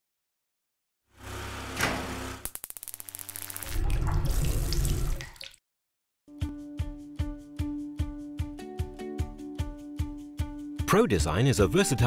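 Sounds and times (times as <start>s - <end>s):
fast run of clicks: 2.4s - 3.7s.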